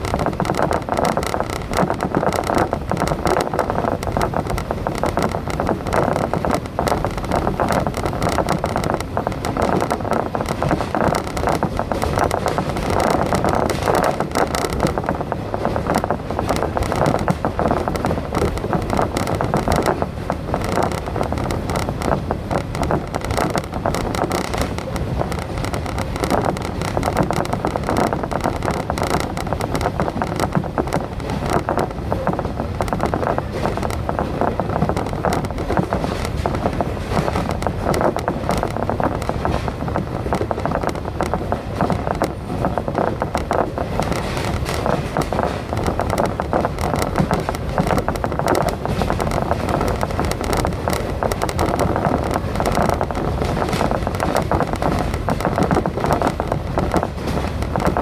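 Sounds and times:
wheels rumbling on rail: 0:00.0 - 0:58.0.

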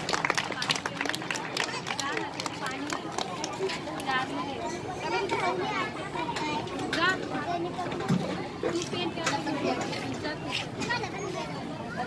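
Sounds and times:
crowd background noise: 0:00.0 - 0:12.0
children talking and calling out: 0:01.4 - 0:12.0.

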